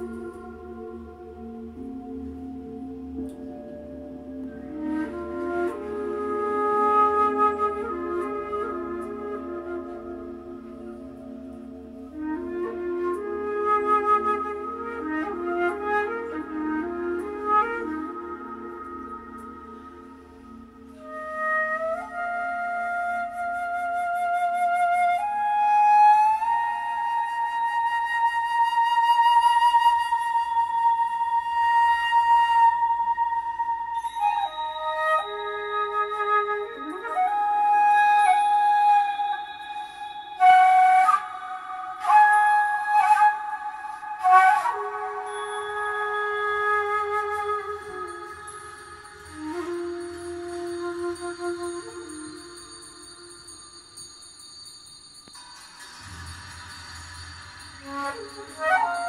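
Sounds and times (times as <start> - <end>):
soft low accompaniment: 0.0 - 53.3
flute long held notes: 0.0 - 54.2, 55.3 - 59.0.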